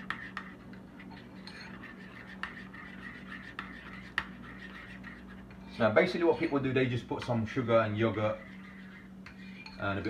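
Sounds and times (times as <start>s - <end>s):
spoon scraping ceramic bowl: 0.0s - 6.7s, 8.0s - 10.0s.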